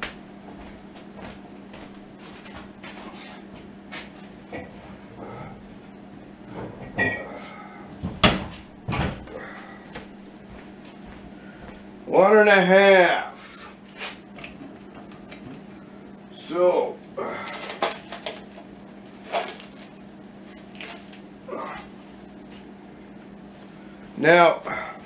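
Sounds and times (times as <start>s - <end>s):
steady low hum: 0.0s - 25.0s
cupboard door knocks and clunks: 8.0s - 9.2s.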